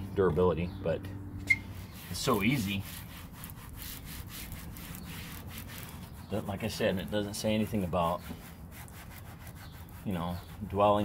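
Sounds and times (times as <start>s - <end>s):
pad rubbing on plastic: 1.6s - 11.0s.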